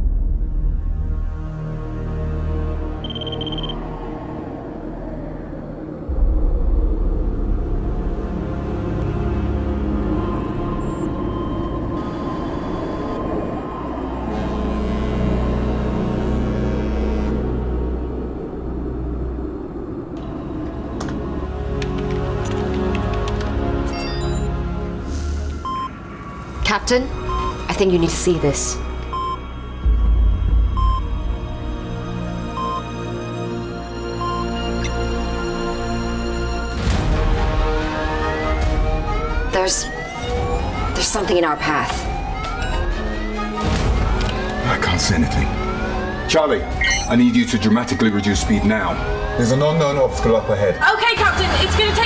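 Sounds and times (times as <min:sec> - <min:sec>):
dark falling drone: 0:00.0 - 0:28.1
tense film score: 0:00.0 - 0:52.0
deep low rumble: 0:02.8 - 0:22.9, 0:25.1 - 0:32.7
high electronic beeps: 0:03.0 - 0:03.8, 0:10.2 - 0:13.2, 0:23.9 - 0:24.6, 0:25.6 - 0:26.0, 0:39.4 - 0:42.9, 0:46.8 - 0:47.3.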